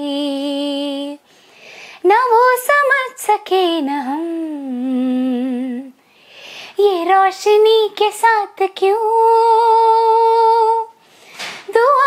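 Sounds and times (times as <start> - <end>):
soft breath: 1.2 - 2.0, 6.0 - 6.8, 11.0 - 11.6.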